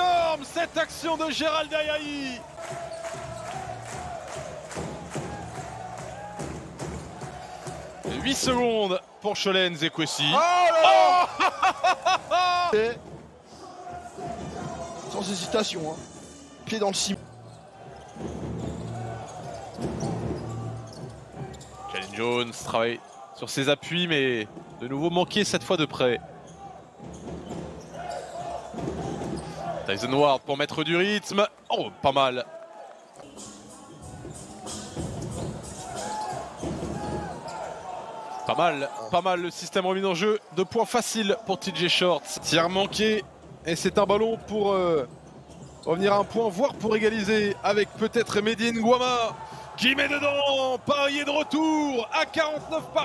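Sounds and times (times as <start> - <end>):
crowd noise: 0.0 - 53.0.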